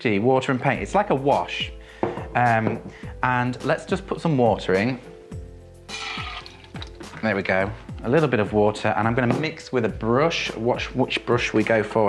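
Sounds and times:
background music: 0.0s - 12.0s
tap water running into container: 5.9s - 7.5s.

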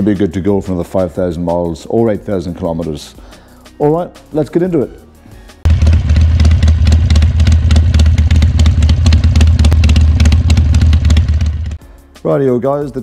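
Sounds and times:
motorcycle engine running: 5.7s - 11.8s.

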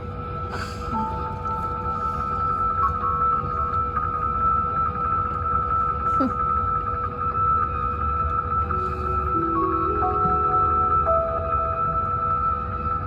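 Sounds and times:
eerie ambient music: 0.0s - 13.0s.

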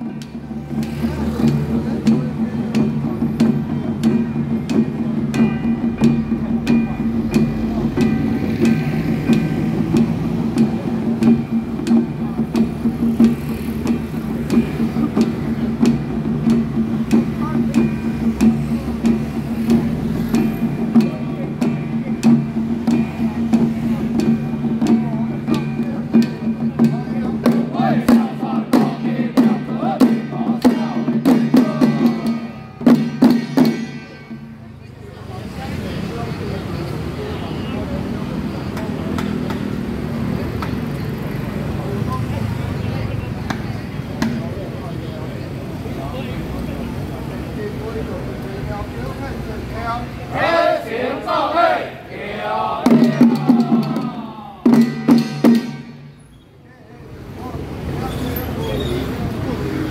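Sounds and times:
small hand drums beating: 0.0s - 35.0s, 38.2s - 42.4s, 43.2s - 45.8s, 52.7s - 56.3s
group chanting: 27.4s - 32.5s, 50.3s - 55.0s.

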